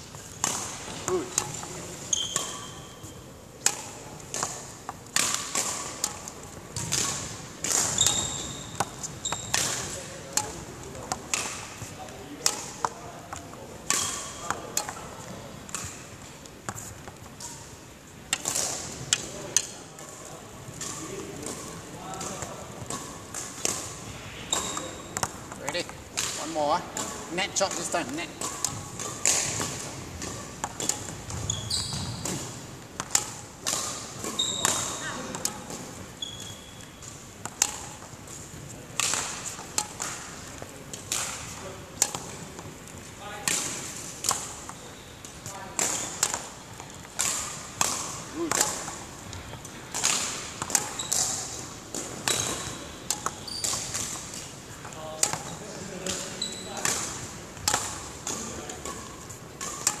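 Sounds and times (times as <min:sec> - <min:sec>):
shoes squeaking on floor: 0:01.0 - 0:03.3, 0:07.8 - 0:10.0, 0:24.4 - 0:25.8, 0:30.3 - 0:32.6, 0:34.2 - 0:37.1, 0:50.8 - 0:54.5, 0:56.3 - 0:56.8.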